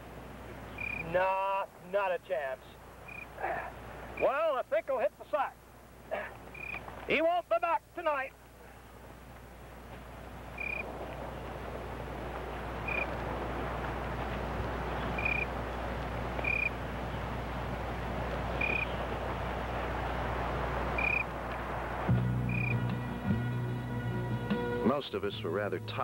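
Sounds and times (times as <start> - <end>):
steady hiss: 0.0 - 22.8
small animal chirping: 0.8 - 1.0, 3.1 - 3.3, 6.5 - 6.8, 10.6 - 10.8, 12.9 - 13.1, 15.2 - 15.5, 16.4 - 16.7, 18.6 - 18.9, 21.0 - 21.2
low steady music: 22.0 - 26.0.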